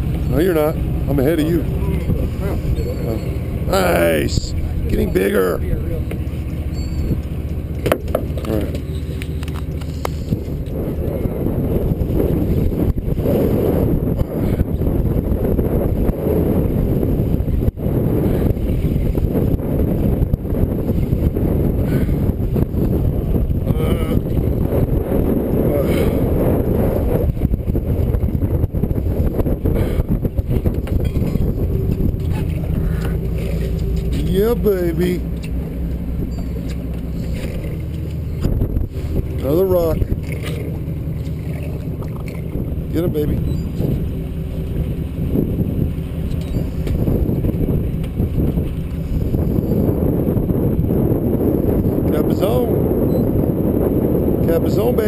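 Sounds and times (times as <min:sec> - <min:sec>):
fishing boat engine running: 0:00.0 - 0:55.0
wind buffeting microphone: 0:00.0 - 0:55.0.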